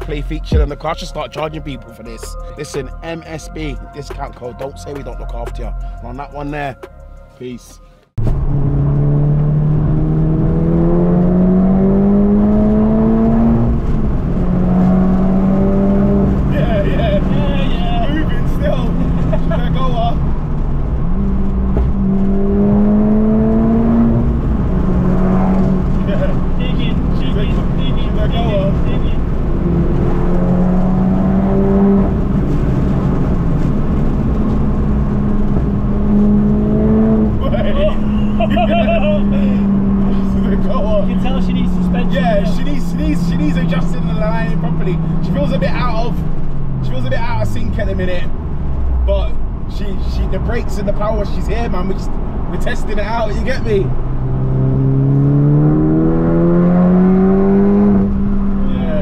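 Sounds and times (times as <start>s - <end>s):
car engine accelerating through gears: 8.2s - 59.0s.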